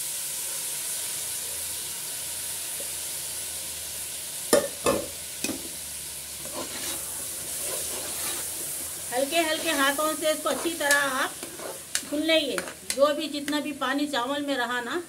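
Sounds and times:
rice sizzling in hot oil: 0:00.0 - 0:15.0.

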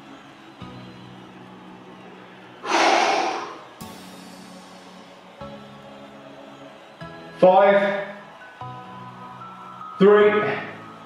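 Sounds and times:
man's forceful breath out: 0:02.6 - 0:03.8.

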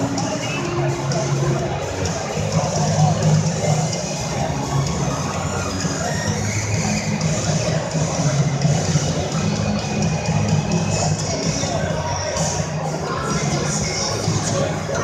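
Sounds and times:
crowd chatter: 0:00.0 - 0:15.0
music over public address: 0:00.0 - 0:15.0.

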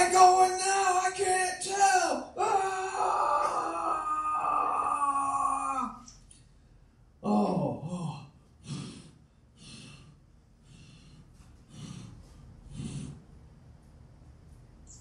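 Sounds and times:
person wailing moans: 0:01.9 - 0:06.1, 0:07.2 - 0:08.3
person groaning: 0:02.4 - 0:06.0, 0:07.2 - 0:09.1.

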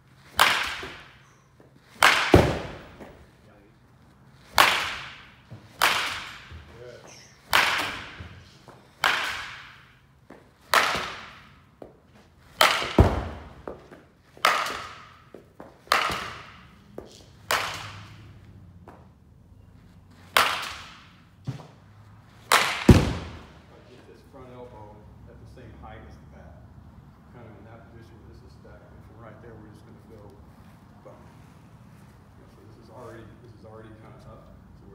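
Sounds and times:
baseball bat cracking balls: 0:00.1 - 0:03.4, 0:04.4 - 0:19.2, 0:20.1 - 0:23.7.

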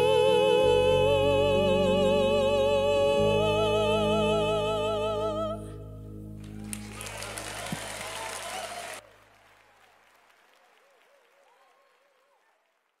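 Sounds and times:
audience applauding: 0:06.4 - 0:13.0.

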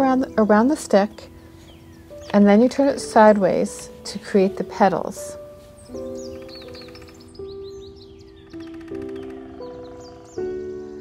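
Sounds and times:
soft keyboard chords: 0:00.0 - 0:11.0
high bird-like chirps: 0:05.6 - 0:11.0.

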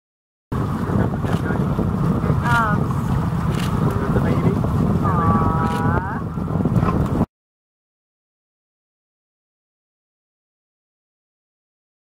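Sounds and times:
low rumble: 0:00.5 - 0:07.3
wind buffeting microphone: 0:00.5 - 0:07.3.

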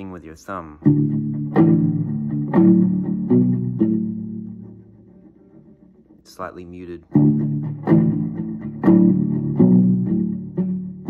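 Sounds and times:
muted electric guitar chord strokes: 0:00.8 - 0:06.4, 0:07.0 - 0:11.0.

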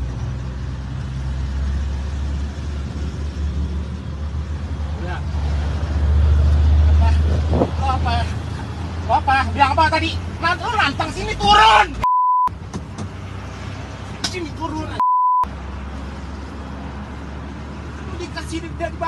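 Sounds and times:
car engine rumble: 0:00.0 - 0:19.0
road traffic: 0:00.0 - 0:19.0
men's voices: 0:06.7 - 0:12.1.

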